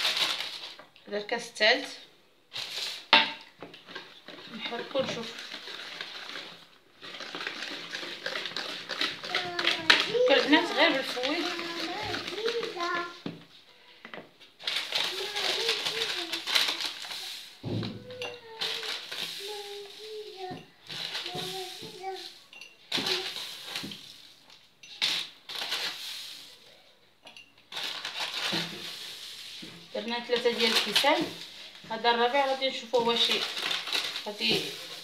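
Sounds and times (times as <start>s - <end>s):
whisk beating batter in a bowl: 7.2s - 12.9s.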